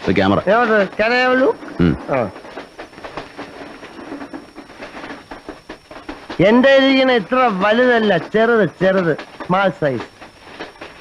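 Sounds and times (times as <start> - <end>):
train carriage rattling: 0.0 - 11.0.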